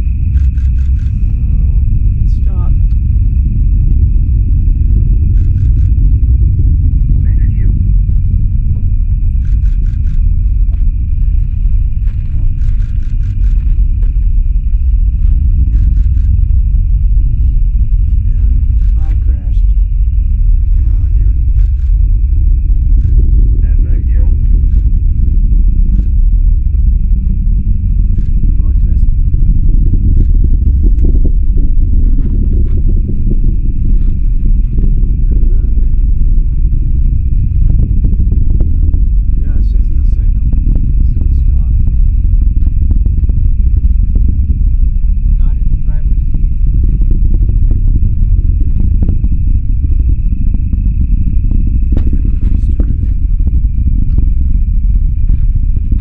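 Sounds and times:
distant rocket engine rumble: 0.0 - 56.0
thin high-pitched whine: 0.0 - 56.0.

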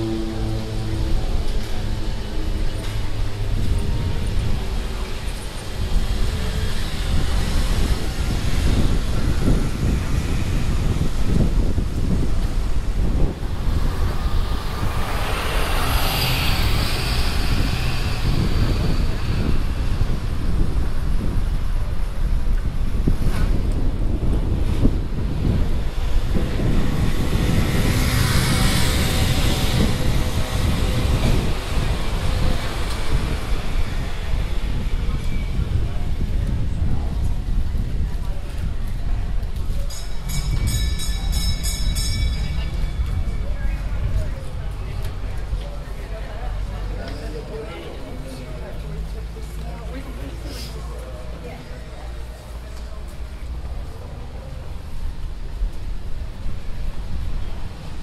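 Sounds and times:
street traffic: 0.0 - 58.0
vehicles passing: 0.0 - 58.0
wind buffeting microphone: 0.0 - 58.0.

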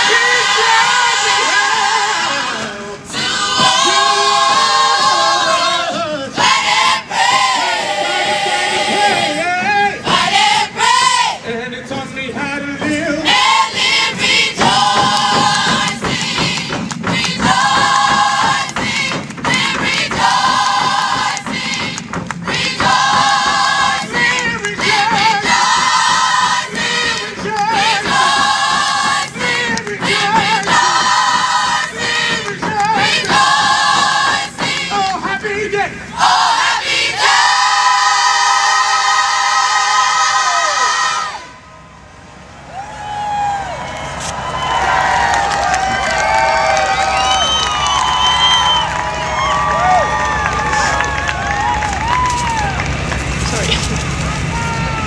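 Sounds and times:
gospel choir singing: 0.0 - 41.7.

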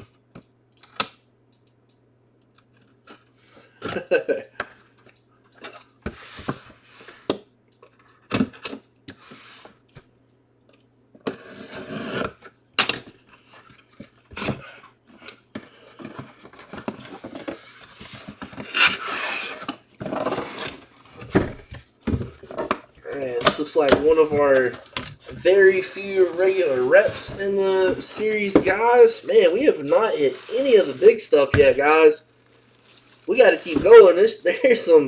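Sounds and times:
cardboard scraping and rustling: 16.0 - 34.3.

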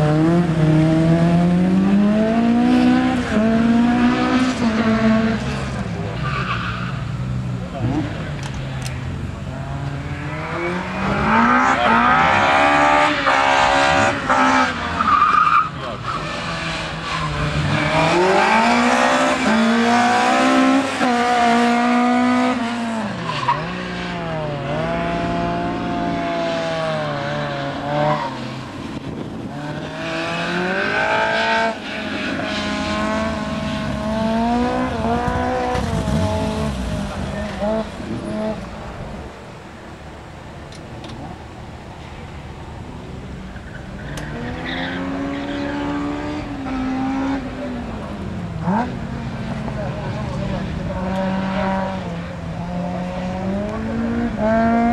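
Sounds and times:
car engine revving at full throttle: 0.0 - 6.2, 7.2 - 43.4, 44.0 - 54.9.

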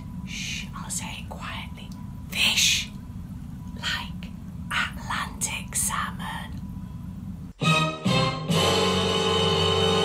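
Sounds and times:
steady low hum: 0.0 - 7.6
woman whispering: 0.3 - 3.0, 3.8 - 6.6.

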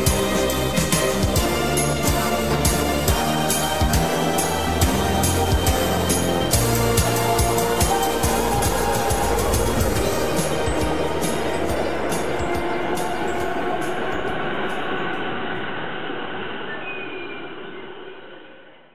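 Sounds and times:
song playing: 0.0 - 15.3
electric train moving off: 0.0 - 18.7.

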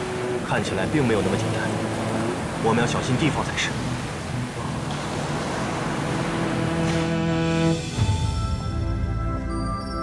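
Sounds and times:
river waves rushing: 0.0 - 8.3.

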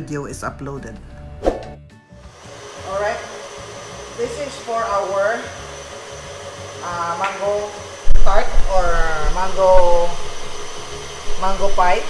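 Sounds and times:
stand mixer motor whirring: 2.3 - 12.0.

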